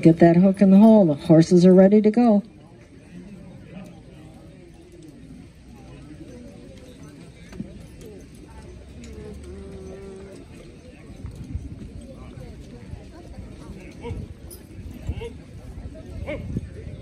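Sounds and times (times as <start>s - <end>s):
hooves stamping on dirt: 2.1s - 17.0s
faint chatter of voices: 2.2s - 17.0s.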